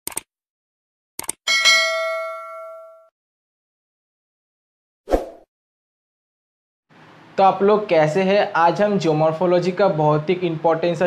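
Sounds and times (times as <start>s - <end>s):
quick clicks: 0.0s - 0.3s, 1.2s - 1.4s
bell ding: 1.5s - 3.1s.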